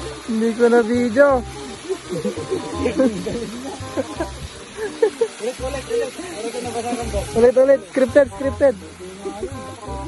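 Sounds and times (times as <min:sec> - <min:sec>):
stream running over rocks: 0:00.0 - 0:10.0.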